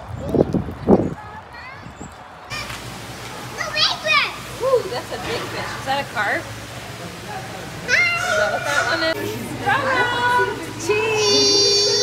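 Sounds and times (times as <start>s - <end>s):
child singing: 11.0s - 12.0s.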